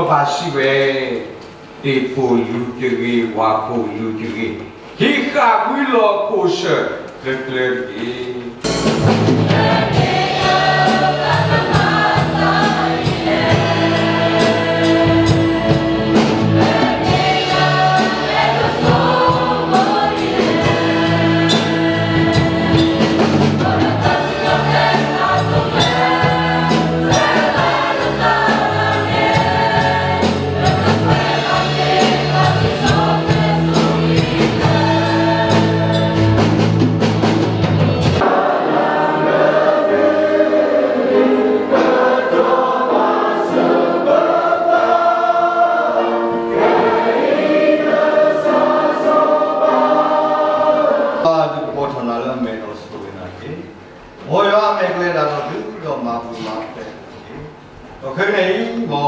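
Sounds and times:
keyboard: 7.8 - 52.7
drums: 8.4 - 45.4
choir singing a hymn: 8.9 - 52.0.

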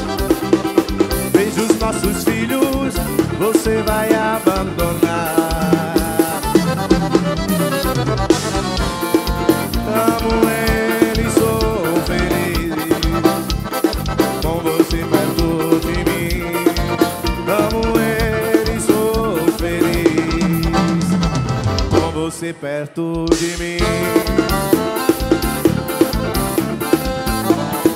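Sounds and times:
accordion melody: 0.0 - 22.6, 23.3 - 27.9
drum kit and percussion: 0.0 - 27.9.

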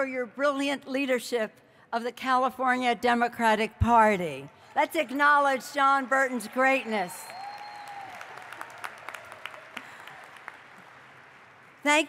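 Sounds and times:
crowd applause: 6.1 - 11.8.

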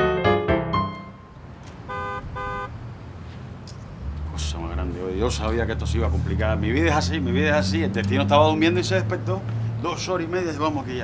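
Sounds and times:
street traffic hum: 0.9 - 11.0
car horn beeps: 1.1 - 2.8.

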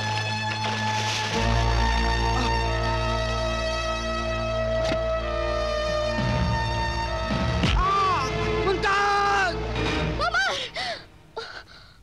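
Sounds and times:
woman breathing hard: 10.4 - 12.0.

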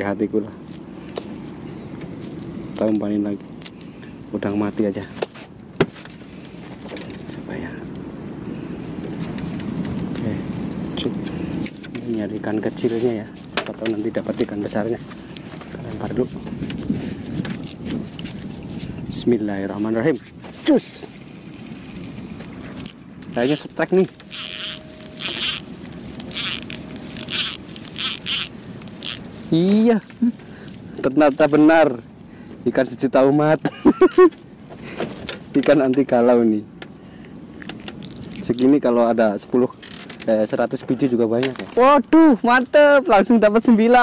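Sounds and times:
fishing gear clicking: 17.5 - 18.4, 22.7 - 30.8.

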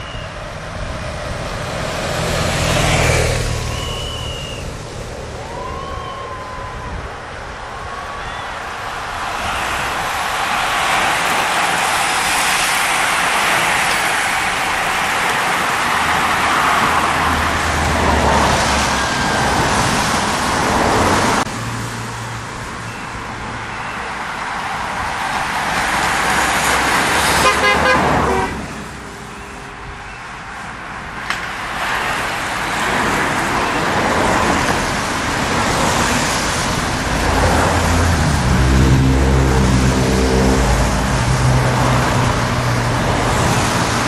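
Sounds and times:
car engines: 0.0 - 44.0
tyres rushing on wet road: 0.3 - 44.0
car horn toot: 27.4 - 28.6.

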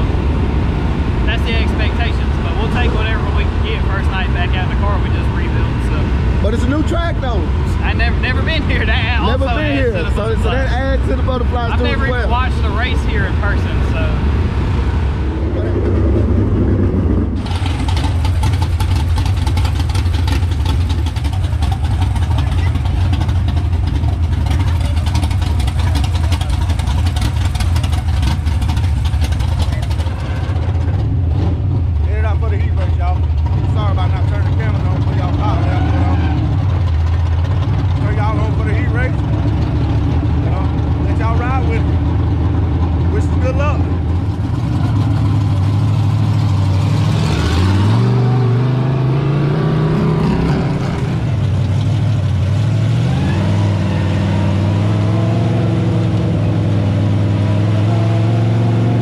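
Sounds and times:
race car engine idling: 1.1 - 47.0, 49.9 - 54.0.

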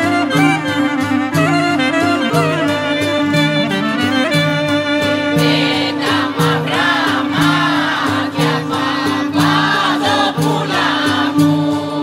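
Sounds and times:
low repeating accompaniment: 0.0 - 12.0
choir singing folk melody: 5.3 - 12.0.

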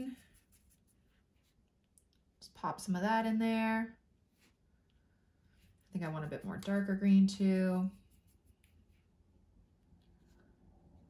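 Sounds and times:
paintbrush tapping and scratching: 0.0 - 2.2, 5.5 - 9.2.

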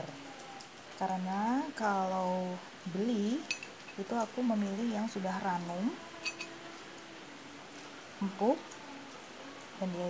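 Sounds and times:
faint steady hum: 0.0 - 10.0
metal tongs clinking on glass: 3.4 - 4.0, 6.2 - 6.6.

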